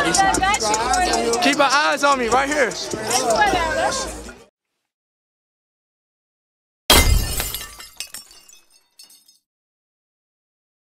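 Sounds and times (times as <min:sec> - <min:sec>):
glass pieces tinkling: 0:06.9 - 0:09.5
glass shattering crash: 0:06.9 - 0:09.5.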